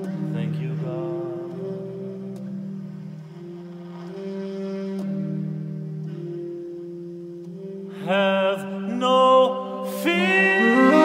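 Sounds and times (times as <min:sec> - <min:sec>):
alto saxophone long notes: 0:00.0 - 0:08.1, 0:10.0 - 0:11.0.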